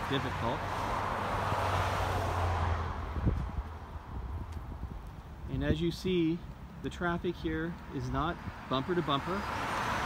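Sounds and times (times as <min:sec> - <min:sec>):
pickup truck passing: 0:00.0 - 0:04.4, 0:08.1 - 0:10.0
low traffic rumble: 0:00.0 - 0:10.0.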